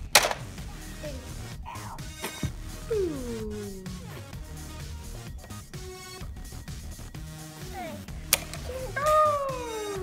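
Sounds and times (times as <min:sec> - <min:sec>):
vocal sound sliding down in pitch: 0:02.8 - 0:04.2.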